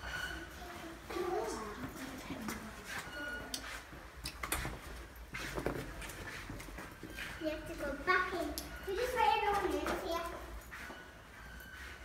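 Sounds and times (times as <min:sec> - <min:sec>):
child's high-pitched voice: 0:00.5 - 0:02.2, 0:07.4 - 0:10.6.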